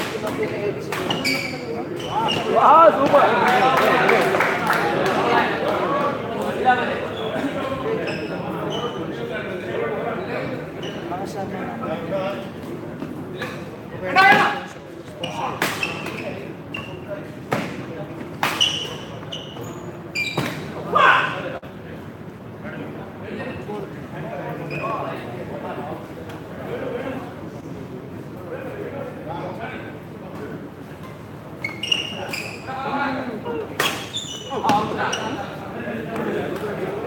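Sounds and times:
shoes squeaking on court floor: 0.2 - 3.2, 6.9 - 9.3, 10.2 - 11.4, 12.4 - 20.8, 24.6 - 25.2, 30.9 - 37.0.

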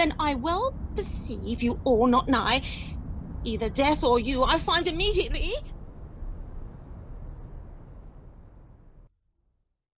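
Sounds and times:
low background rumble: 0.0 - 9.1
crickets chirping: 0.0 - 9.2.

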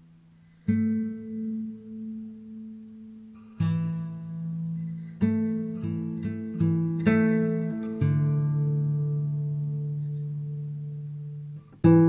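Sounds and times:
strummed acoustic guitar chord: 0.0 - 12.0.

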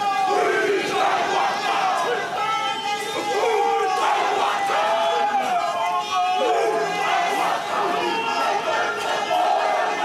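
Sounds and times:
group chanting in unison: 0.1 - 2.3, 3.3 - 5.4, 6.4 - 10.0.

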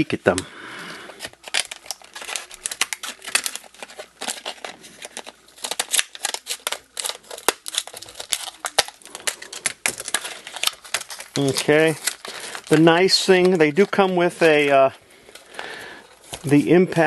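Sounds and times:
plastic crackling and crinkling: 0.0 - 17.0
scissors cutting plastic packaging: 1.1 - 17.0.

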